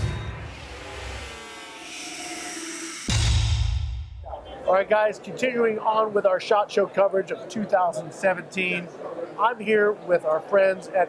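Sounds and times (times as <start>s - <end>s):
heavy bass hits: 3.0s - 4.3s.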